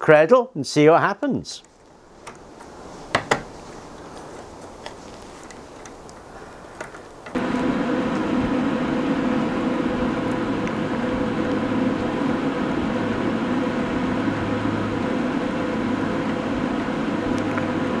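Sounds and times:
duct fan humming: 0:01.6 - 0:18.0.

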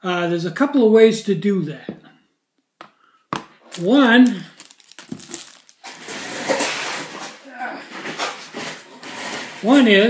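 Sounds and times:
rustling handling noise: 0:03.3 - 0:10.0.

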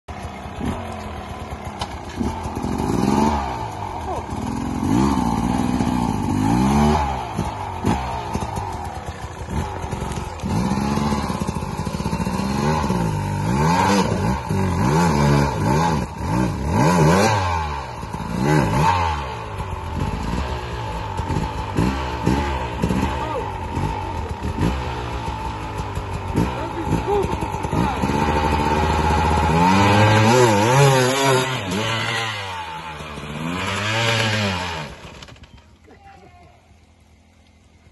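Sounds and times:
dirt bike engine revving: 0:00.1 - 0:35.6.

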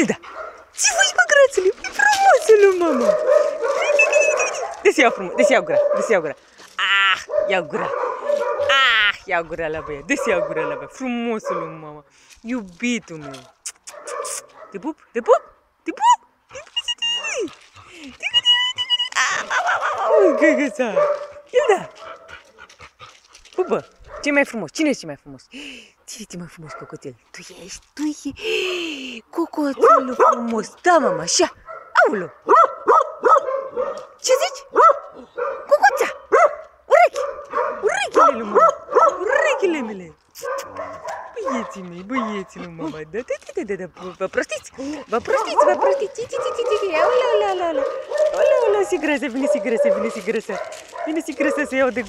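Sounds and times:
dogs whining and yipping: 0:01.9 - 0:04.8, 0:44.8 - 0:50.0.

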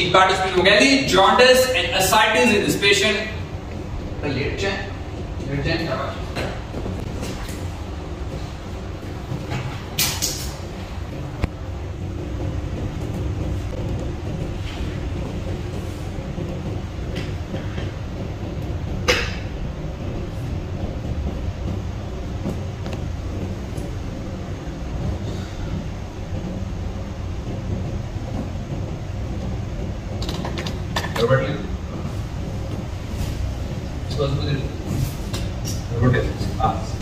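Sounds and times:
low room noise rumble: 0:00.0 - 0:37.0.

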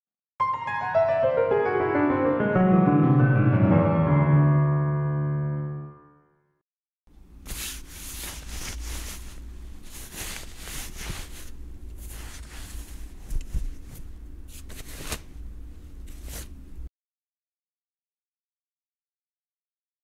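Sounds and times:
steady low hum: 0:07.1 - 0:16.9
crackly rustling noise: 0:07.4 - 0:16.6.

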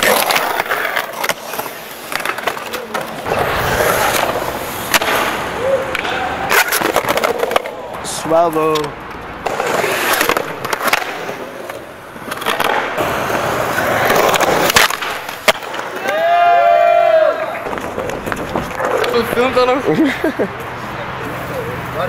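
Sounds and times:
outdoor background noise: 0:00.0 - 0:22.0
skateboard wheels rolling on concrete: 0:00.0 - 0:22.0.

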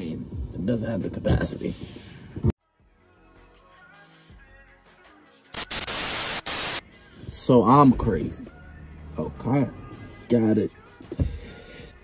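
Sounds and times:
tv static hiss: 0:05.6 - 0:06.8.

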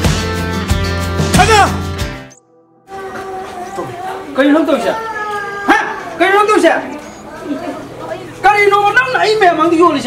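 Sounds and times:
background music: 0:00.0 - 0:04.4.

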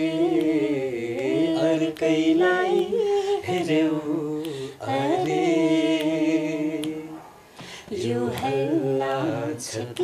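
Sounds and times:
person singing unaccompanied: 0:00.0 - 0:07.2, 0:07.9 - 0:10.0.

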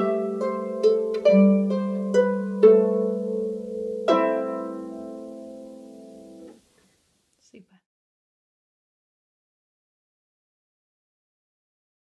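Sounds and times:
harp chord ringing: 0:00.0 - 0:06.5.

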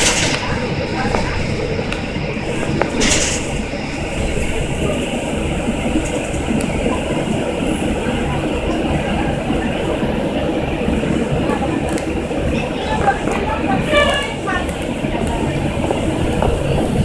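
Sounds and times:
bus engine and road rumble: 0:00.0 - 0:17.0.

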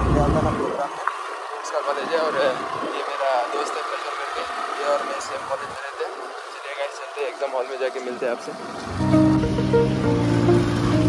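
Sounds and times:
road noise: 0:00.0 - 0:11.0
motorbike engine: 0:01.4 - 0:06.6, 0:08.6 - 0:11.0.

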